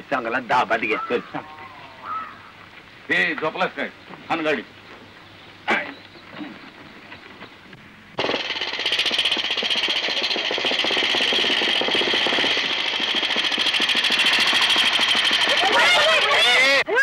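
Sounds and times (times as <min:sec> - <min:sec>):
motorcycle engine approaching: 0:08.2 - 0:16.8.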